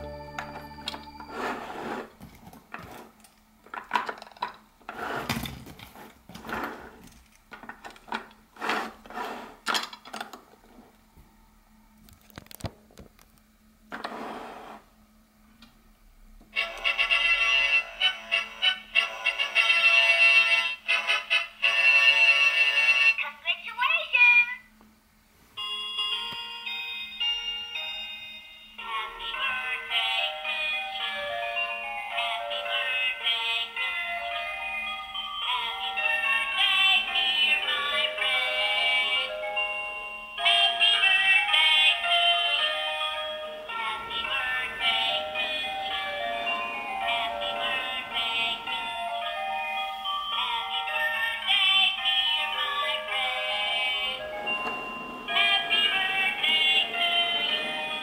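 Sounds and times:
toy playing electronic tune: 0.0 - 2.0
synthesized singing voice: 43.7 - 49.2, 50.3 - 54.5, 55.3 - 58.0.

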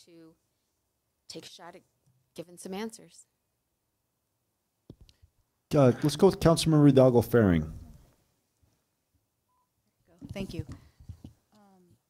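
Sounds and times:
faint electronic beep: 9.4 - 9.8.

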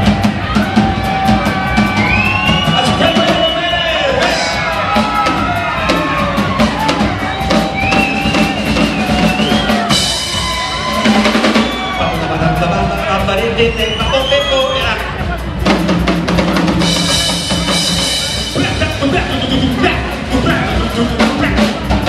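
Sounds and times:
drum kit steady beat: 0.0 - 22.0
high bending melody line: 2.7 - 22.0.

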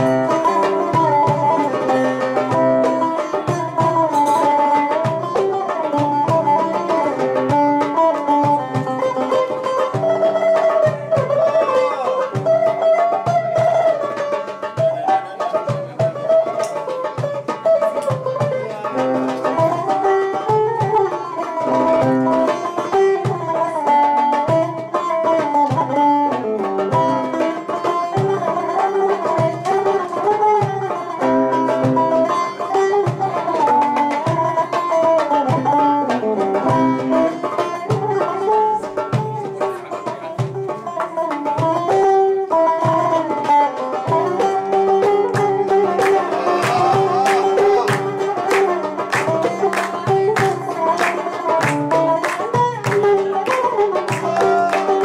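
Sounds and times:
plucked long-necked lute melody: 0.0 - 55.0.

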